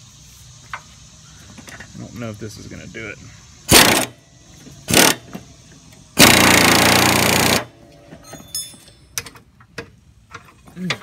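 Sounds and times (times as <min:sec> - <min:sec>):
air impact ratchet hammering: 0:03.7 - 0:07.8.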